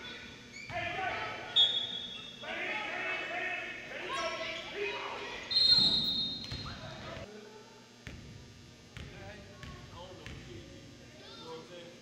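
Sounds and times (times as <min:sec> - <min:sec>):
referee's whistle blast: 0:01.5 - 0:02.3, 0:05.5 - 0:06.6
people shouting: 0:02.4 - 0:05.6.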